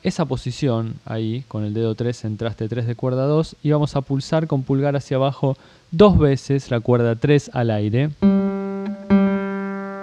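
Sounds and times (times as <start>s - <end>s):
acoustic guitar string plucked: 8.2s - 10.0s.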